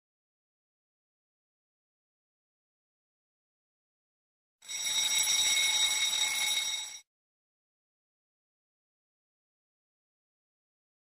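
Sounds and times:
high alarm bell ringing: 4.6s - 7.1s.

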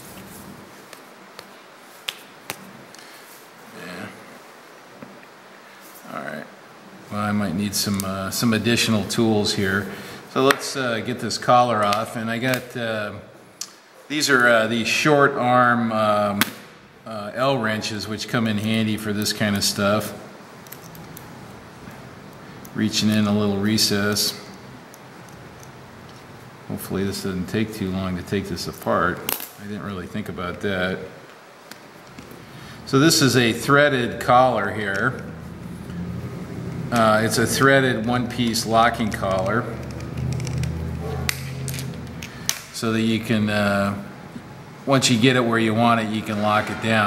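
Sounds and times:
low steady hum: 0.0s - 47.0s.

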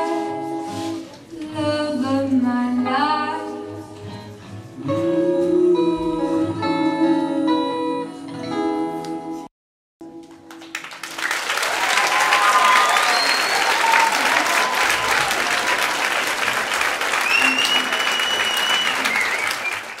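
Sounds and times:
audience applauding: 10.3s - 20.0s
crowd cheering and whistling: 11.2s - 20.0s.

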